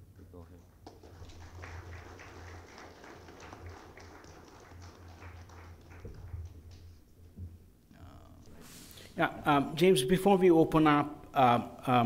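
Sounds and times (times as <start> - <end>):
audience applauding: 0.8 - 7.0.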